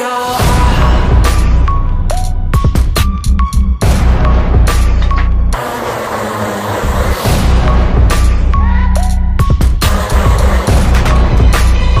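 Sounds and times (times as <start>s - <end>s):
bass-heavy backing music: 0.0s - 12.0s.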